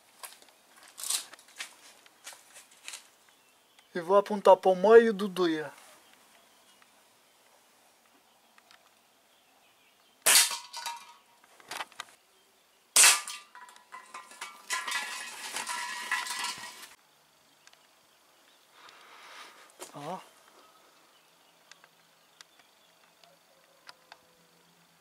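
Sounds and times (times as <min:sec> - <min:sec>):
pellet ringing on tin can: 0:13.0 - 0:17.0
metallic rattling clatter: 0:13.2 - 0:17.0.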